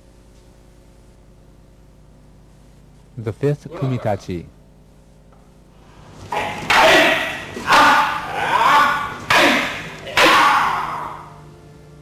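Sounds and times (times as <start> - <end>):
people shouting: 6.3 - 11.4.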